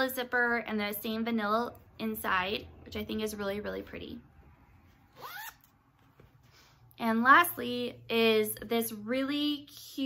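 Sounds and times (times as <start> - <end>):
zipper pulled on fabric bag: 5.1 - 5.6.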